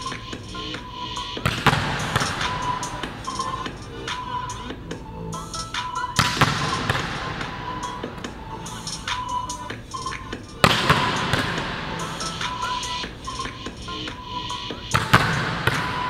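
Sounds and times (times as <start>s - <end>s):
background music: 0.0s - 16.0s
volleyball hits echoing in hall: 1.4s - 4.4s, 5.8s - 8.4s, 10.6s - 13.6s, 14.9s - 16.0s.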